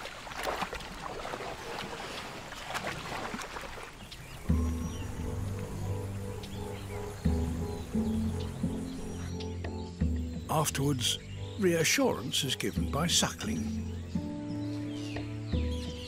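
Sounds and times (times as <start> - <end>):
water sloshing and splashing: 0.0 - 6.6
music with sustained low notes: 4.1 - 16.0.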